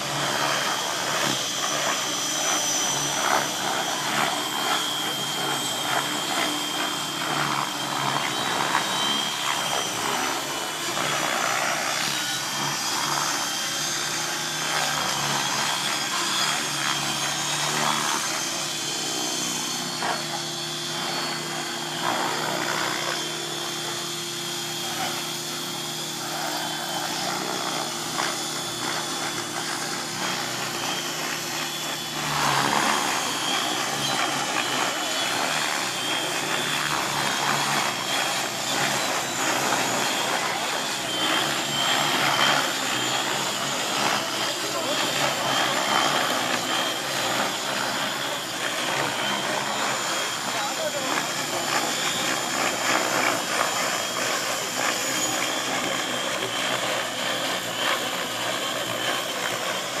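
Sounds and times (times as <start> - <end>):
high motor whine: 0.0 - 60.0
model helicopter rotor noise: 0.0 - 60.0.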